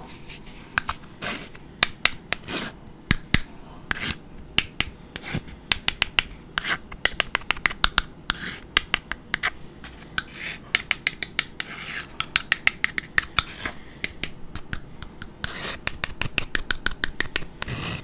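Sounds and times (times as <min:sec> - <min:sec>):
wooden sticks clicking: 0:10.7 - 0:17.5.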